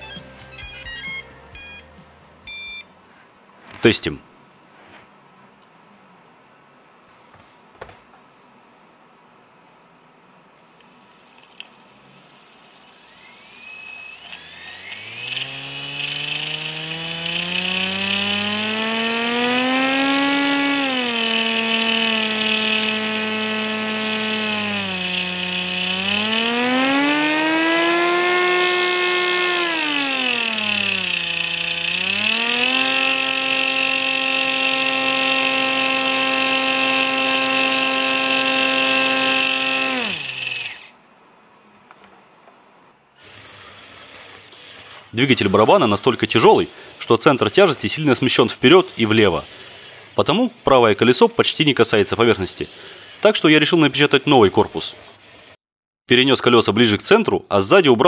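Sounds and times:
electric motor whine: 0:11.6 - 0:41.0, 0:43.2 - 0:55.6.

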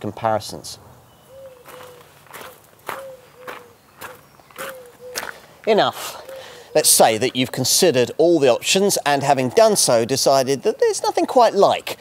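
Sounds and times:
footsteps on gravel: 0:01.6 - 0:06.3.

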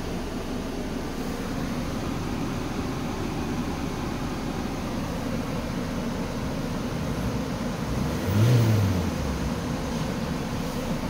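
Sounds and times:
van engine idling and revving: 0:00.0 - 0:11.0.

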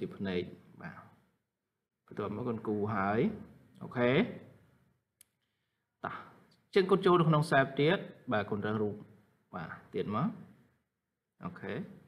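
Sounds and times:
person speaking: 0:00.0 - 0:01.2.

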